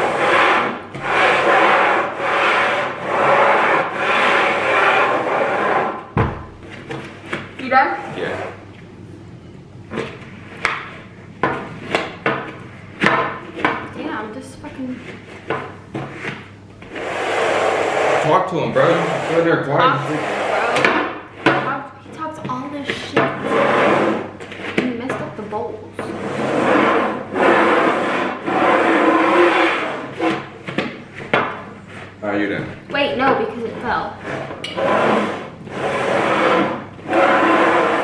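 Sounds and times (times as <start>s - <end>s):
bowl rims scraping across wood: 0.0s - 6.2s, 11.7s - 32.5s, 33.2s - 38.0s.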